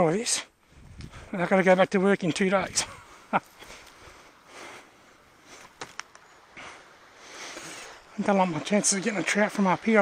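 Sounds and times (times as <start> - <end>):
rustling and scuffing on bark: 0.8 - 6.3.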